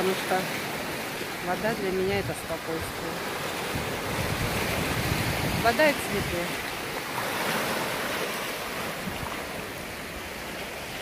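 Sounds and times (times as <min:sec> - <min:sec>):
waves breaking over rocks: 0:00.0 - 0:11.0.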